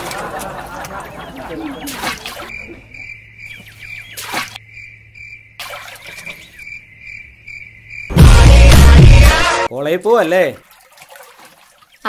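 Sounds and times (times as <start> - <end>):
insects chirping: 1.2 - 8.2.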